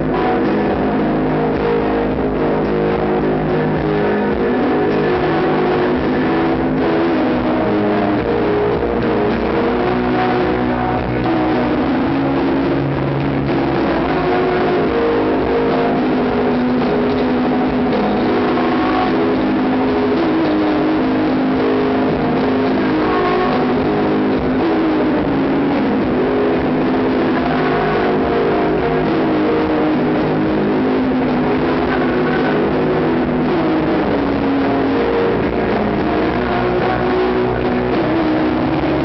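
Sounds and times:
distorted live rock band: 0:00.0 - 0:39.0.

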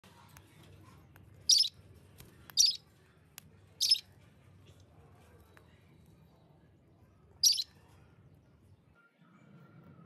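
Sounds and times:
parakeet harsh call: 0:07.4 - 0:07.7.

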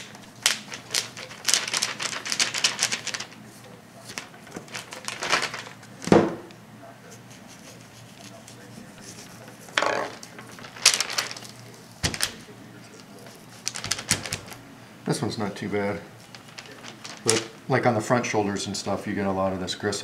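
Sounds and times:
paper rustling: 0:00.0 - 0:06.5, 0:07.1 - 0:14.6, 0:15.5 - 0:17.6.

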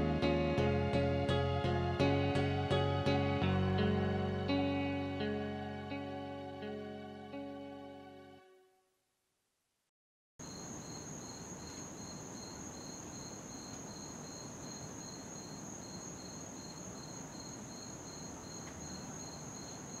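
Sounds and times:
cricket high steady trill: 0:10.4 - 0:20.0
cricket lower pulsing chirp: 0:10.4 - 0:20.0.

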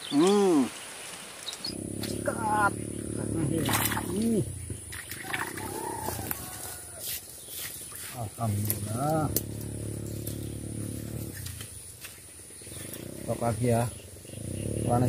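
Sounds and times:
man humming and exclaiming: 0:02.0 - 0:04.5.

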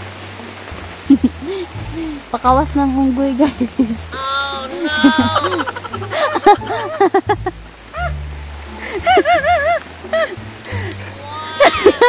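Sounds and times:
music: 0:00.0 - 0:12.0
voice crying out sing-song: 0:04.0 - 0:07.0, 0:11.2 - 0:12.0.

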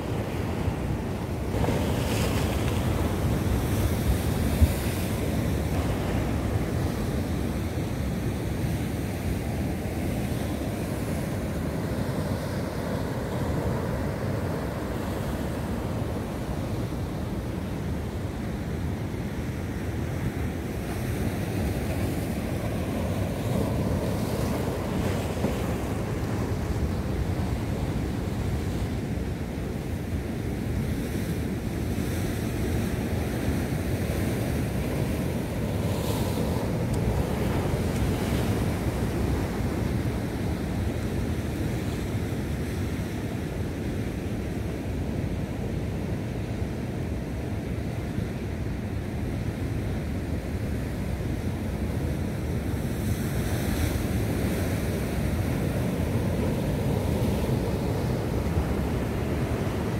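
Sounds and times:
sea surf breaking on rocks: 0:00.0 - 0:46.6, 0:49.4 - 0:59.9
wind rumbling on microphone: 0:00.0 - 0:59.9.

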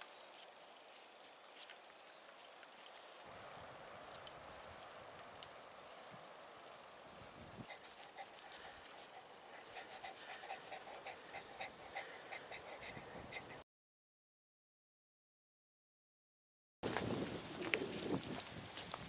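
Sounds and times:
dog panting: 0:07.6 - 0:13.6.

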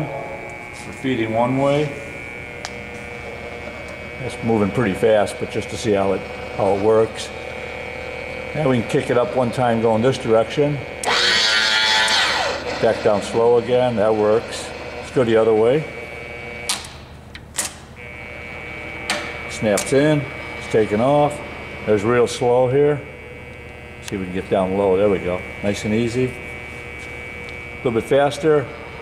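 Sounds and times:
electric motor hum with whine: 0:00.0 - 0:29.0.

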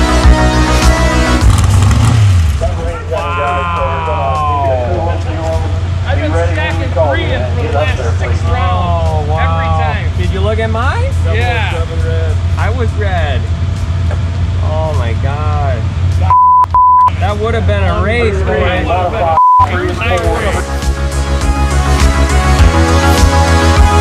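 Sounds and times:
background music: 0:00.0 - 0:12.6, 0:18.3 - 0:24.0
indistinct voices talking: 0:00.0 - 0:24.0
vehicle engine idling: 0:00.0 - 0:24.0.

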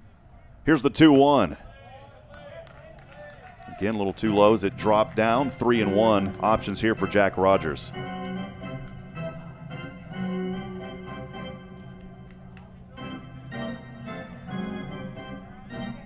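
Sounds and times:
organ playing held chords: 0:03.7 - 0:16.0.

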